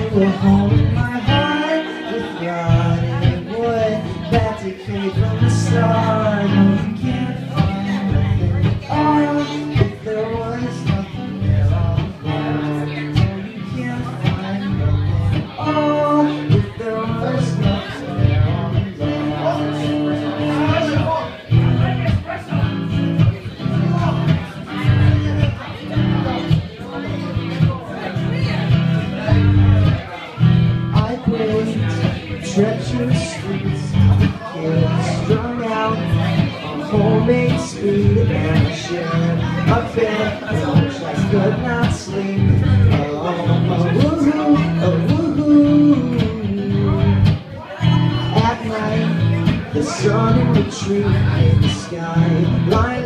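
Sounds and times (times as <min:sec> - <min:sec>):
man singing: 0:00.0 - 0:53.0
strummed acoustic guitar: 0:00.0 - 0:53.0.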